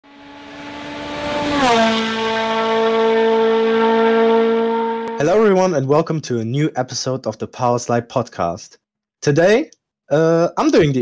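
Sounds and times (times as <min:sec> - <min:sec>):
sustained pitched tone sliding down: 0:00.0 - 0:05.4.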